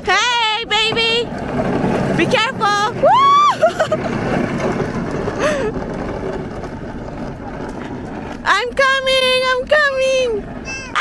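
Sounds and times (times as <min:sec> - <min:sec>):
high-pitched voice calling out: 0:10.6 - 0:11.0.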